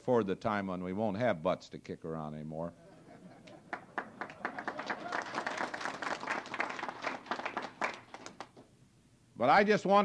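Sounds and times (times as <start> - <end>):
audience applauding: 3.5 - 8.7.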